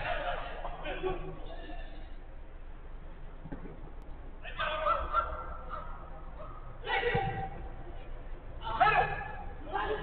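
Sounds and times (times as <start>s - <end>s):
player shouting: 8.6s - 10.0s.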